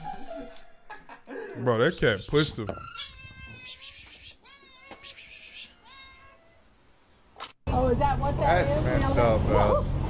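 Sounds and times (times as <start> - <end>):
cat meowing: 2.8 - 6.7.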